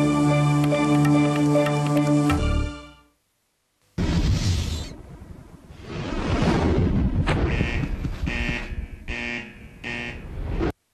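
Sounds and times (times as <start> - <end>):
pulsing buzzing tone: 7.5 - 10.4.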